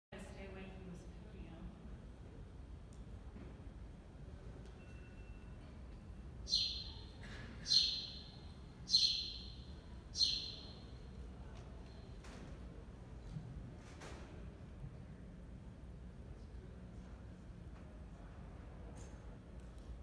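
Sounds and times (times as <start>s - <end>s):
faint room hum: 0.1s - 20.0s
high chirps sweeping down: 7.7s - 9.6s.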